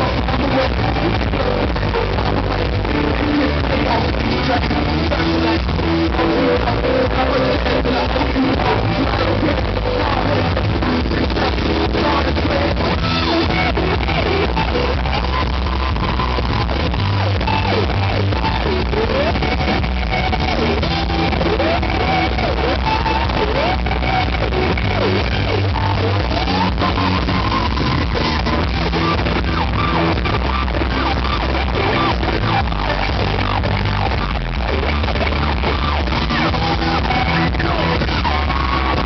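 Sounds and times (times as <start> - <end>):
drum and bass beat: 0.0 - 39.0
electric guitar solo: 0.0 - 39.0
live rock band: 0.0 - 39.0.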